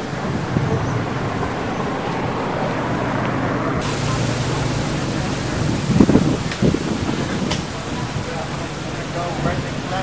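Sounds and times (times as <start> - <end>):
wind rushing: 0.0 - 8.8
distant road traffic: 0.0 - 10.0.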